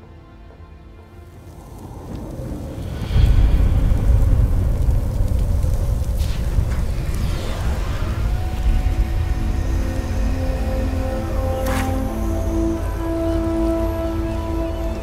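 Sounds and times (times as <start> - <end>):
dark tense orchestral score: 0.0 - 15.0
deep rumble: 1.1 - 15.0.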